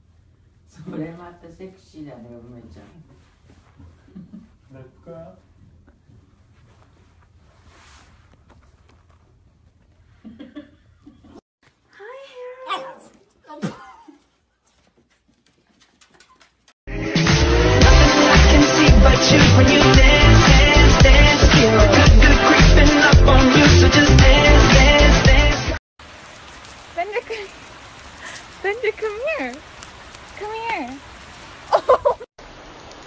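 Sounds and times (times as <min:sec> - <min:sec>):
puppy yapping: 0:12.6 - 0:13.3
rain on wet pavement: 0:26.0 - 0:33.0.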